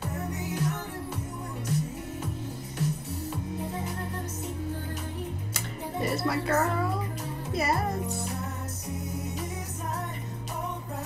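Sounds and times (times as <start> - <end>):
pop song with sung melody: 0.0 - 11.0.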